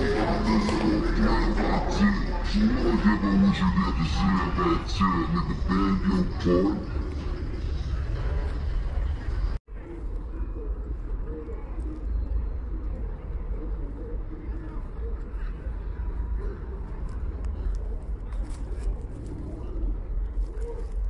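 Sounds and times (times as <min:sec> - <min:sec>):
indistinct voices talking: 0:00.0 - 0:20.8.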